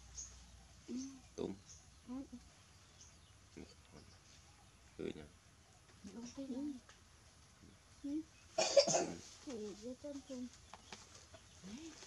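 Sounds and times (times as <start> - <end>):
soft voice sounds: 0.9 - 2.4
loud cough-like burst: 8.6 - 9.2.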